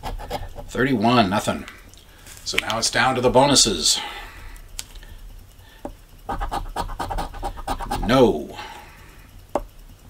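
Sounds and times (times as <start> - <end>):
coin scratching lottery ticket: 0.0 - 0.8, 6.3 - 8.3.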